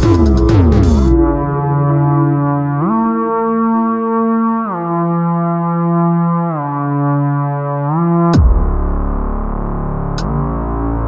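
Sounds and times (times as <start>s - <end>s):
gliding synthesizer note: 0.0s - 8.4s.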